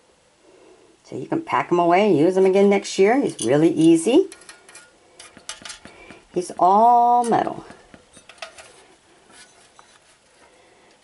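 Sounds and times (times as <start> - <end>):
soft metallic clicks and clinks: 4.3 - 6.1.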